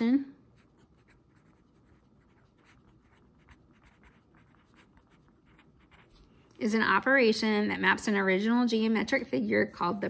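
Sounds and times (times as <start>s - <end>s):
pen scratching on paper: 0.6s - 6.3s.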